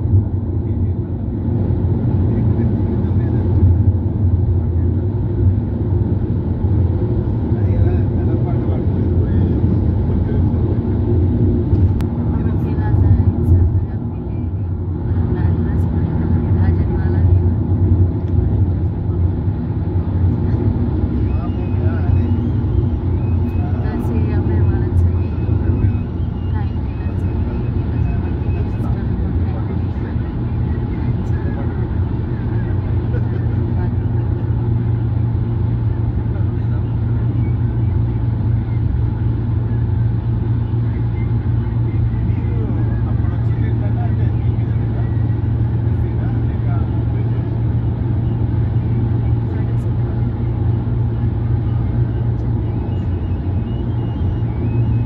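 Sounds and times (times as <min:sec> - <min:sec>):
road and engine noise in car: 0:00.0 - 0:55.0.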